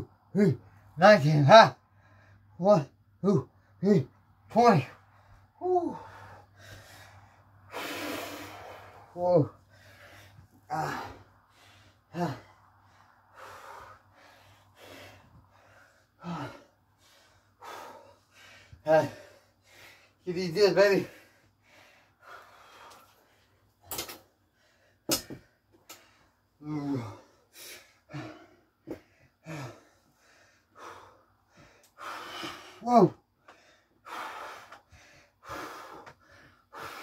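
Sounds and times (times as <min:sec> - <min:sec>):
man breathing out heavily: 0:01.8 - 0:02.6, 0:04.9 - 0:20.2, 0:20.8 - 0:37.0.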